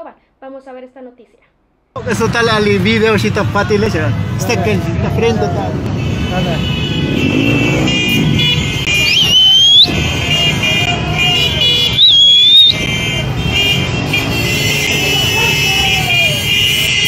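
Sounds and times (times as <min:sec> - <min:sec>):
motorcycle engines passing: 0:02.0 - 0:17.0
high horn-like tones: 0:05.8 - 0:17.0
shrill rising whistles: 0:09.0 - 0:09.9, 0:12.0 - 0:12.8.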